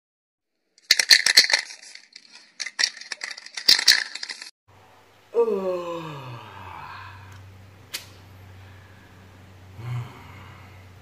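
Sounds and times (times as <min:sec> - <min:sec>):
rattle shaken in sharp clicks: 0:00.8 - 0:04.5.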